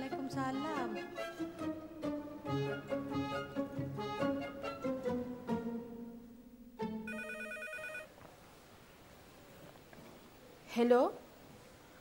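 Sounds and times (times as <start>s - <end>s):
telephone ringing: 7.1s - 8.1s.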